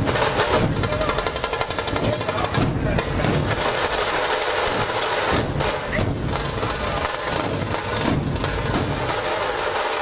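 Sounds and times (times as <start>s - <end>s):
barrel drums playing fast: 0.0s - 10.0s.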